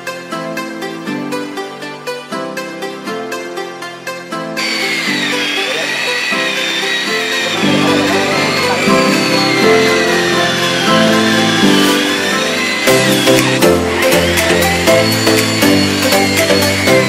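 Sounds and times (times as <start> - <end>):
background music with a beat: 0.0 - 17.0
electric polisher whining: 4.6 - 17.0.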